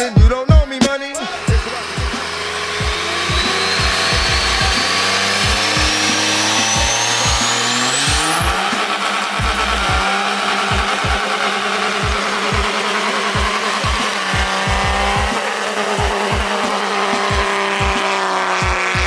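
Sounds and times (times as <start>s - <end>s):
diesel engine under full power: 0.0s - 19.0s
rap music with kick drum: 0.0s - 19.0s
turbo whistle: 1.2s - 19.0s
tyre squeal: 1.2s - 19.0s.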